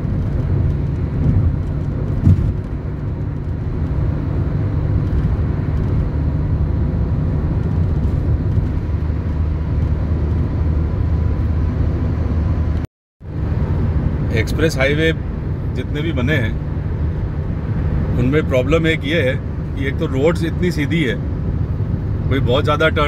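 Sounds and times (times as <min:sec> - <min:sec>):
car cabin road rumble: 0:00.0 - 0:23.0
car bump: 0:01.1 - 0:02.8.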